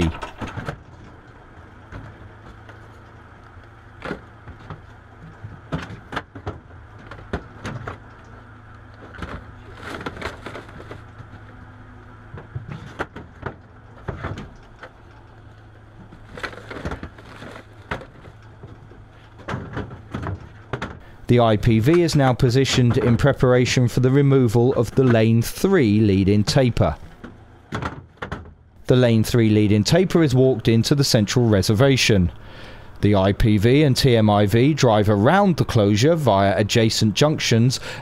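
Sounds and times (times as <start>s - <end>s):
truck engine humming: 0.0s - 38.0s.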